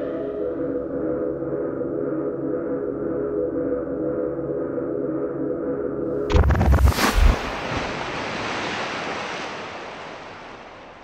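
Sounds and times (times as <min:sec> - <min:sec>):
deep booms: 0:06.3 - 0:08.3
rushing noise: 0:06.3 - 0:11.0.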